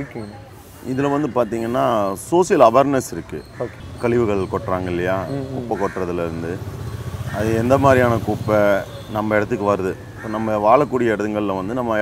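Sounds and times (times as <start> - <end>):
man talking: 0.0 - 6.7, 7.4 - 12.0.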